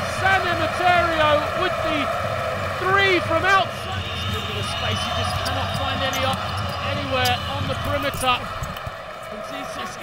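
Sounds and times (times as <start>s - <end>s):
male commentator calling excitedly: 0.0s - 2.1s, 2.8s - 8.5s, 9.3s - 10.0s
arena crowd noise: 0.0s - 10.0s.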